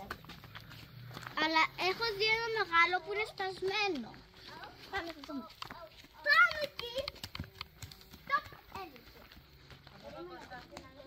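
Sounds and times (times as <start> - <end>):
young children calling and chattering: 0.0 - 11.0.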